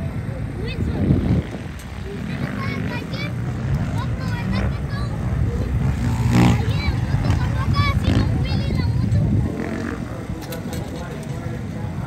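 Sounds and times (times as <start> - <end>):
distant dirt bike engine: 0.0 - 12.0
voices: 0.0 - 12.0.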